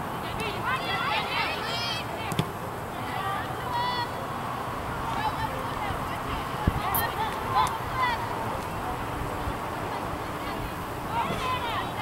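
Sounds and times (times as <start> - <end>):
players shouting: 0.2 - 8.8.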